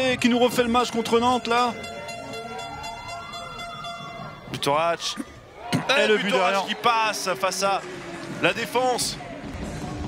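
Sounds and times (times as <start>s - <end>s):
sustained horn-like tones: 0.3s - 5.4s.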